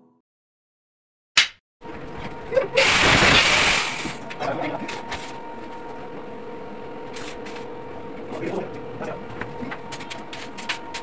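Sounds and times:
welding machine electrical hum: 1.8 - 11.0.

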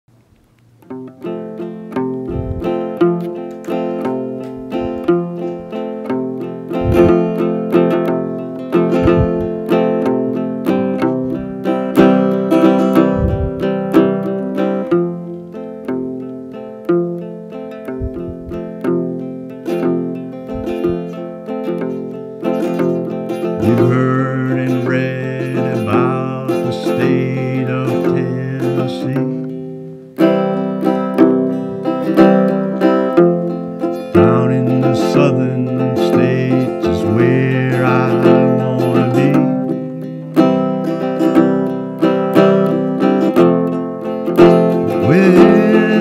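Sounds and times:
acoustic guitar playing: 0.1 - 46.0.

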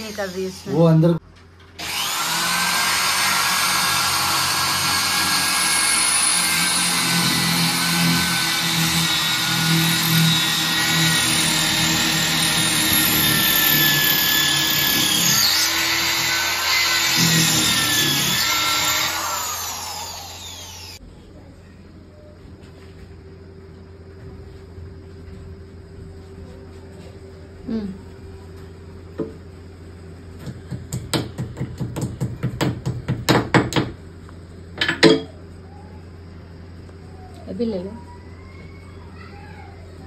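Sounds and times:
electric drill whining: 0.0 - 0.9, 1.7 - 21.0.

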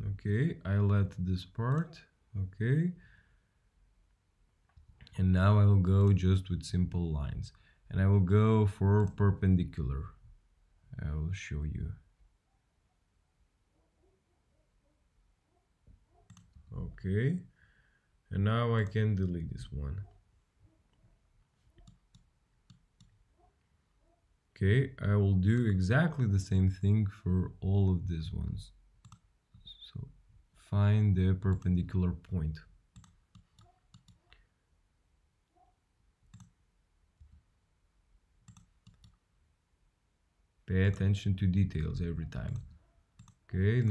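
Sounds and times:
man speaking: 0.0 - 3.0, 5.1 - 10.2, 10.9 - 12.1, 16.7 - 17.6, 18.3 - 20.2, 24.6 - 28.8, 29.6 - 32.7, 40.7 - 42.8, 43.5 - 43.9
computer mouse clicks: 16.3 - 16.7, 21.8 - 23.2, 29.0 - 29.7, 32.9 - 34.4, 36.3 - 36.6, 38.4 - 39.2, 41.8 - 43.9.

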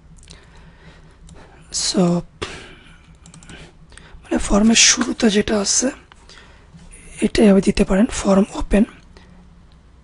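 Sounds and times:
keyboard keys clicking: 3.2 - 3.5.

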